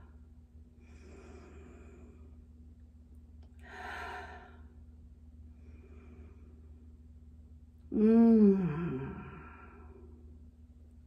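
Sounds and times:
woman breathing out: 3.6 - 4.7.

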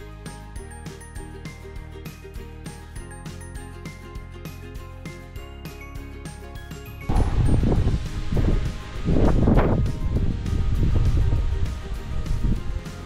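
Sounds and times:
background music: 0.0 - 13.0
wind buffeting microphone: 7.1 - 13.0.

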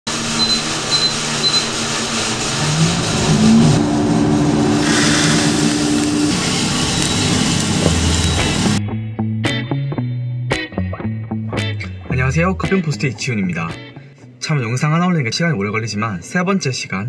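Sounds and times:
coffee roaster fan and drum: 0.1 - 8.8
low motor hum: 0.1 - 8.8
short high beeps: 0.4 - 1.7.

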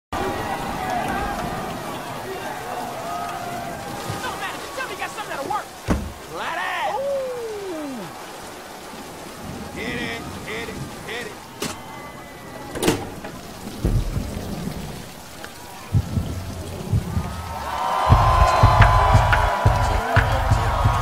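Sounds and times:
rain falling: 0.1 - 21.0
thunder cracks and rumbling: 9.2 - 21.0.

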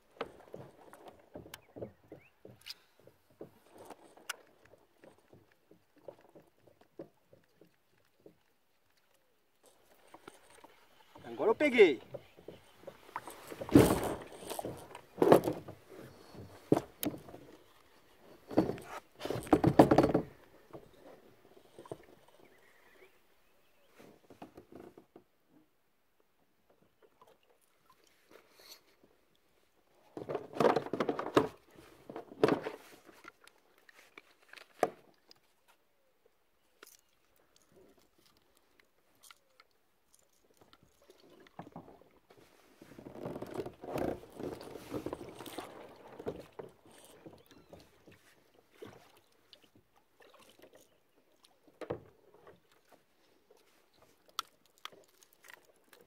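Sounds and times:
handling knocks and rustling: 9.6 - 22.2.

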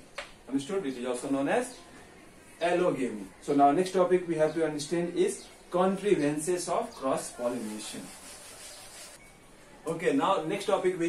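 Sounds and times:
duster scrubbing chalkboard: 7.4 - 9.2.

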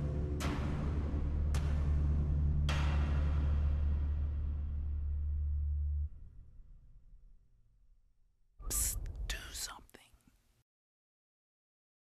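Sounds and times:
person whispering: 8.6 - 10.3.

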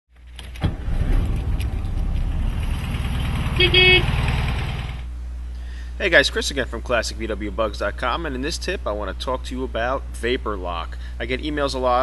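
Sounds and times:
car engine rumbling: 0.2 - 8.8.

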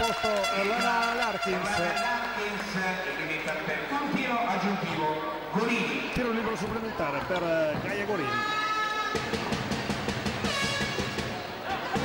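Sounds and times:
horn holding high notes: 0.0 - 2.5
quick even drum beats: 9.1 - 12.0.

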